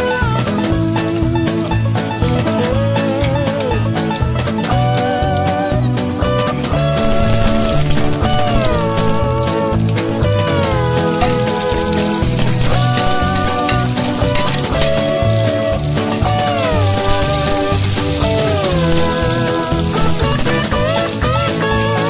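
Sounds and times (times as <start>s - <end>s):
background music with bass line: 0.0s - 22.0s
garlic and onion sizzling in oil: 0.0s - 22.0s.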